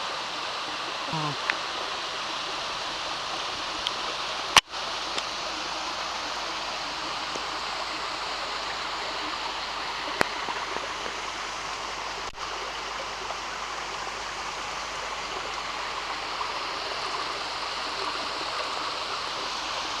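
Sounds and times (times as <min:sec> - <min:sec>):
water rushing over rocks: 0:00.0 - 0:20.0.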